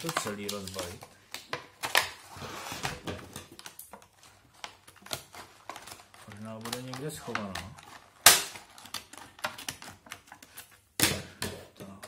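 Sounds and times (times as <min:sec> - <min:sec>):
plastic clicks and crackles: 0:00.0 - 0:02.2, 0:03.3 - 0:10.8
plastic packaging cracking: 0:00.0 - 0:02.2, 0:03.3 - 0:11.2.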